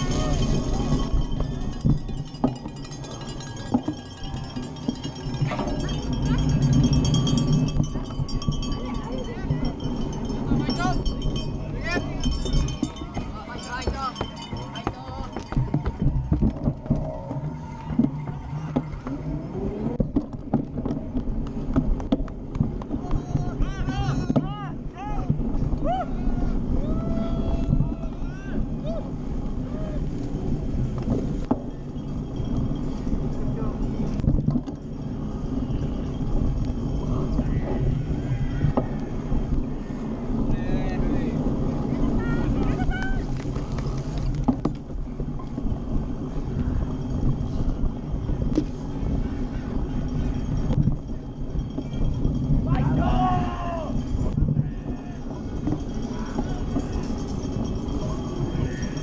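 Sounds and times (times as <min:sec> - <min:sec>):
low rumble: 0:00.0 - 0:59.0.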